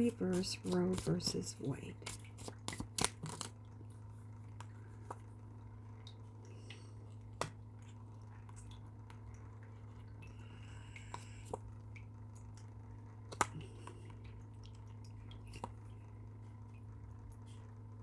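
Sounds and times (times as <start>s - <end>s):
steady low hum: 0.0s - 18.0s
cards shuffled with soft clicks: 0.1s - 3.6s.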